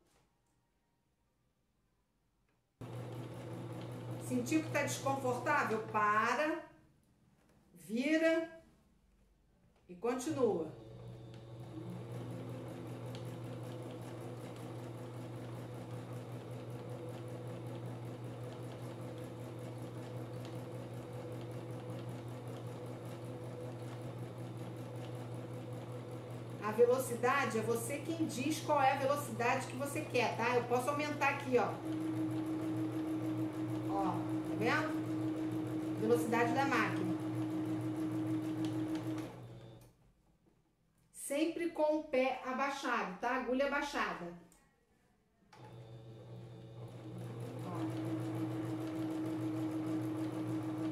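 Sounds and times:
sewing machine stitching: 0:02.8 - 0:06.1, 0:10.3 - 0:39.9, 0:45.6 - 0:50.9.

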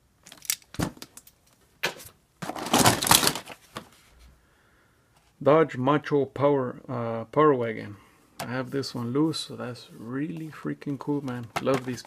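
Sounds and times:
rustling and clattering in box: 0:01.9 - 0:04.1, 0:11.3 - 0:12.0.

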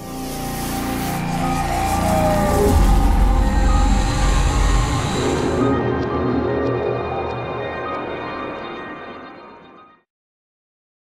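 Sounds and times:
held steady electronic tones: 0:00.0 - 0:10.0
rushing swell with deep rumble: 0:00.6 - 0:07.8.

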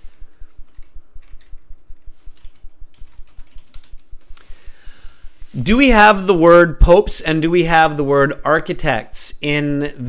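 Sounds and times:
computer keyboard typing: 0:00.5 - 0:04.4.

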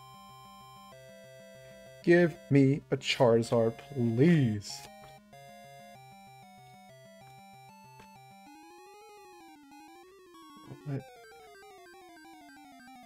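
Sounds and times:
video game style music: 0:00.0 - 0:13.0.

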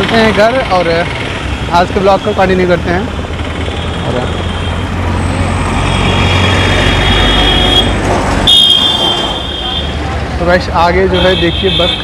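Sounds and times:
bus engines idling: 0:00.0 - 0:11.3
road traffic: 0:00.0 - 0:12.0.

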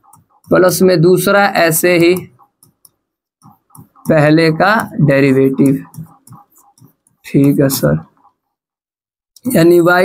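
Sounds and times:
person speaking: 0:00.0 - 0:10.0
pen tapping on writing board: 0:02.0 - 0:07.6.

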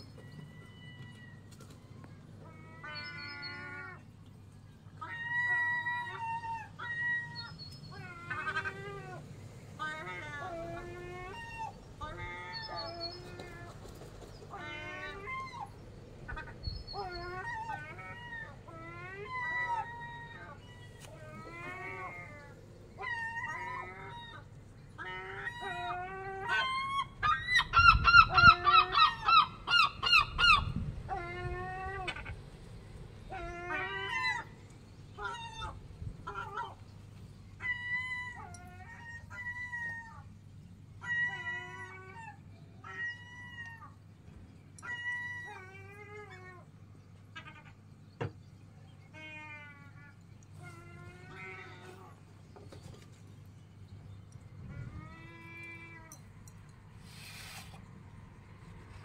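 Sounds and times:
faint low hum: 0:00.0 - 0:59.0
gulls calling: 0:00.0 - 0:59.0.

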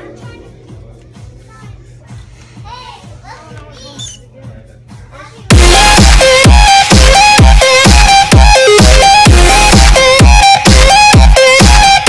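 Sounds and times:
faint background music with beat: 0:00.0 - 0:12.0.

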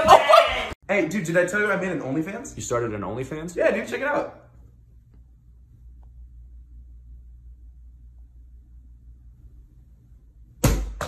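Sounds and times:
low steady hum: 0:00.9 - 0:11.0.

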